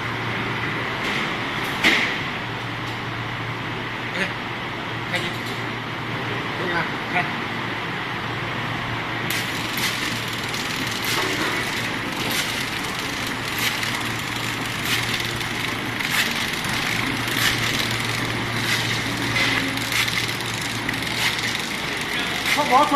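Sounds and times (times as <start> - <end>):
machine humming: 7.3 - 22.9.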